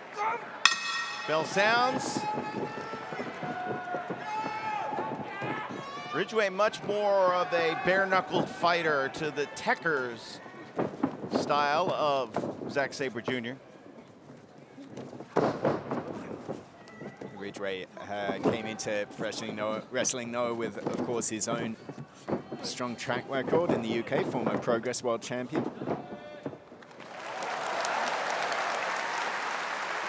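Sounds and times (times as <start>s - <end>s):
ring bell ringing: 0.7s - 2.2s
wrestlers scuffling on mat: 1.6s - 27.6s.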